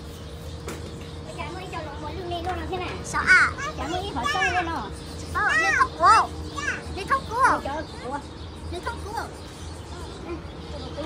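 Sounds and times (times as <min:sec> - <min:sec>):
faint background hum: 0:00.0 - 0:11.0
children squealing: 0:03.2 - 0:08.2.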